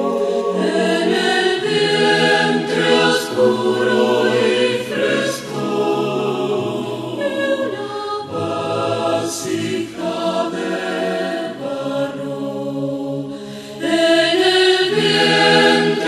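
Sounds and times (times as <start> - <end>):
mixed choir singing in harmony: 0.0 - 16.0.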